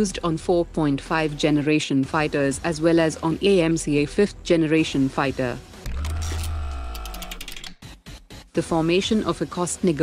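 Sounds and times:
rapid mechanical clicks: 5.8 - 7.8.

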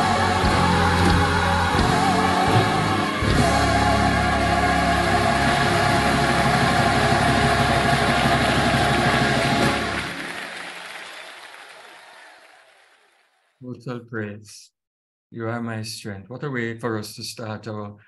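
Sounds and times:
gospel choir singing: 0.0 - 10.9.

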